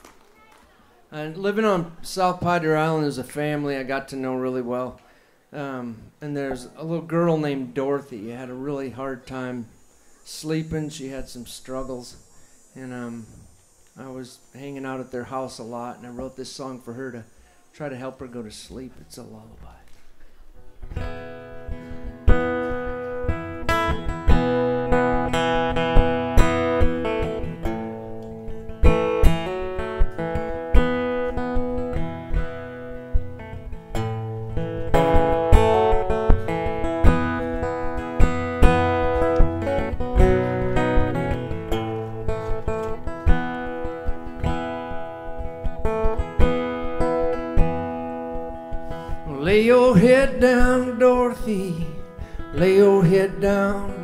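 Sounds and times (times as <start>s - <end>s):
acoustic guitar playing: 20.5s - 54.0s
man singing: 49.2s - 54.0s.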